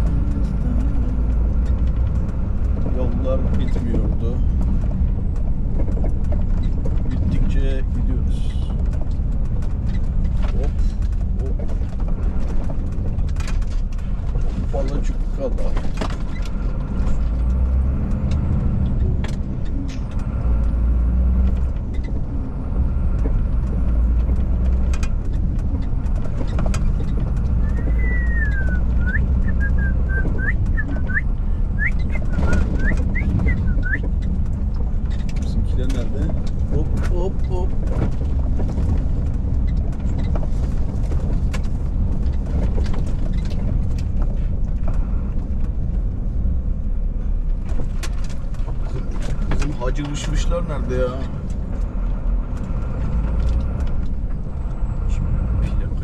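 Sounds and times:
truck diesel engine rumbling: 0:00.0 - 0:56.0.

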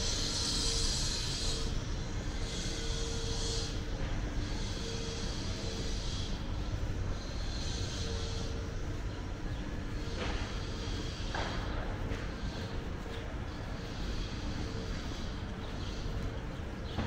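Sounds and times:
hiss with faint hum: 0:00.0 - 0:17.0
low street rumble: 0:00.0 - 0:17.0.

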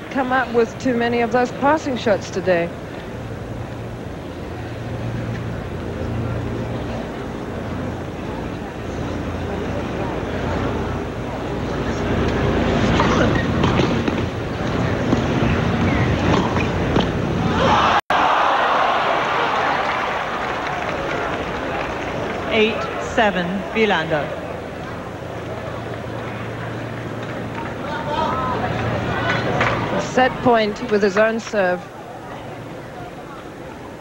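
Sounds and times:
crowd murmuring: 0:00.0 - 0:34.0
crowd applause and cheering: 0:17.4 - 0:23.7.

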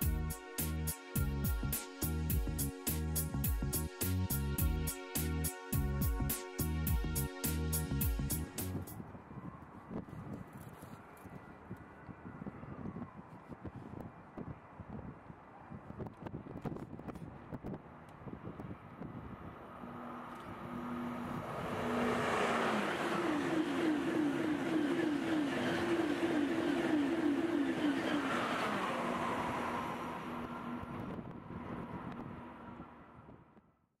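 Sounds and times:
high-speed train passing: 0:18.4 - 0:33.3
rhythmic pulsing train hum: 0:19.5 - 0:32.8.

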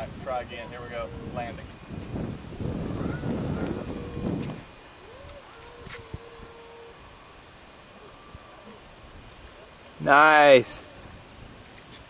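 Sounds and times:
wind buffeting microphone: 0:00.0 - 0:07.4
electric motor whine: 0:00.2 - 0:09.8.

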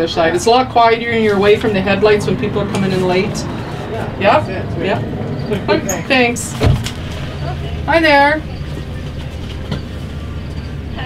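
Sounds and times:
truck engine idling: 0:00.0 - 0:11.0.

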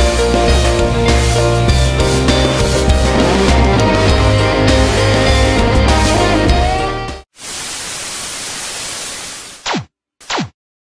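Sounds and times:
background music: 0:00.0 - 0:07.3
tv static hiss: 0:07.4 - 0:09.6.

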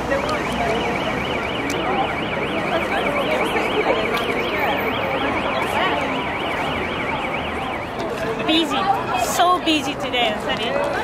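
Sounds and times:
crowd chatter: 0:00.0 - 0:11.0
warbling electronic alarm: 0:00.1 - 0:08.0.

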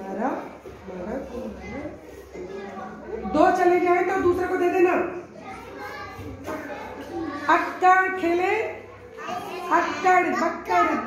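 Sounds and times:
young children chattering quietly: 0:00.0 - 0:11.0.

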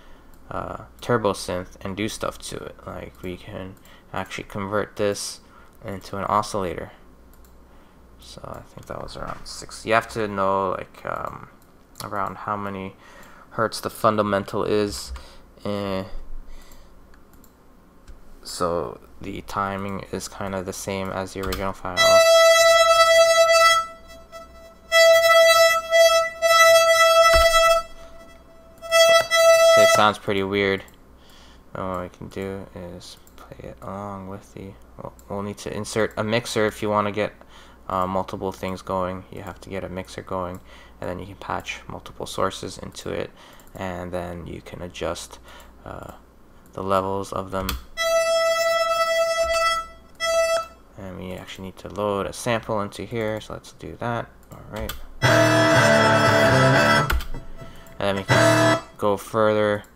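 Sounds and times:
synthesizer holding steady note: 0:21.9 - 0:30.2, 0:55.2 - 0:59.0
synthesizer steady tone: 0:55.2 - 0:57.6, 0:58.2 - 0:59.0.

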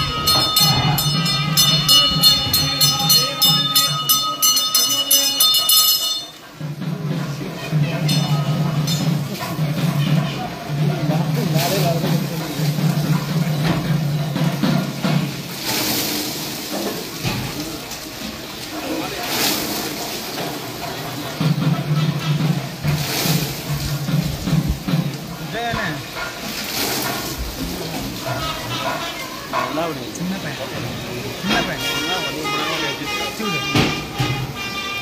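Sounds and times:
water splashing over stone statue: 0:00.0 - 0:34.6.

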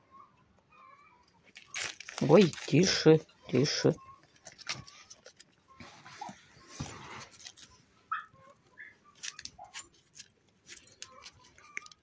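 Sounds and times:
raccoons chewing treats: 0:01.4 - 0:07.8, 0:09.1 - 0:12.0.

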